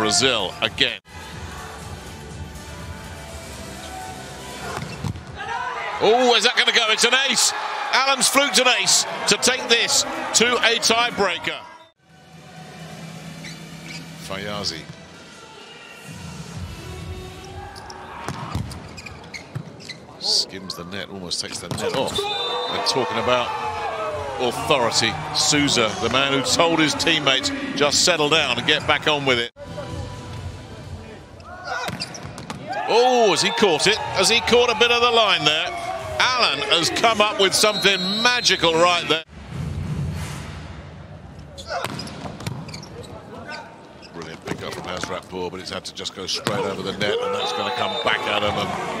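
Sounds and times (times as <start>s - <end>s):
arena crowd noise: 0.0s - 13.5s, 14.2s - 39.3s, 41.0s - 49.0s
volleyball smacks: 41.8s - 42.6s.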